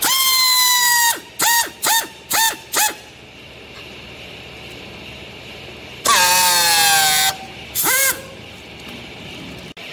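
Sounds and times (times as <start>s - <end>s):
pneumatic tool air hiss with whine: 0.0s - 3.1s, 6.0s - 8.4s.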